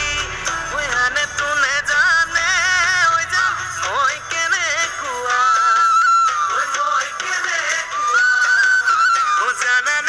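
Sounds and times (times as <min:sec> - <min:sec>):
person singing over music: 0:00.0 - 0:10.0.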